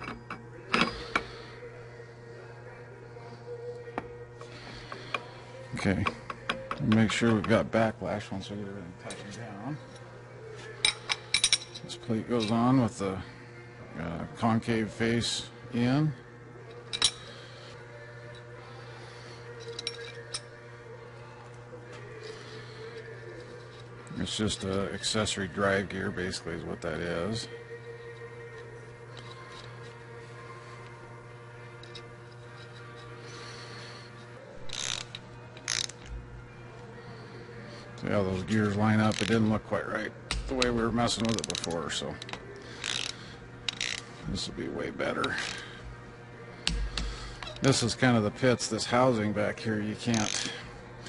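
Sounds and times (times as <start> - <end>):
faint steady hum: 0.0 - 51.0
metal parts clinking: 10.8 - 12.6, 16.9 - 17.3, 19.6 - 20.5, 34.6 - 36.2, 40.3 - 44.0
ratchet wrench clicking: 34.6 - 36.1, 40.3 - 44.0, 50.1 - 50.5.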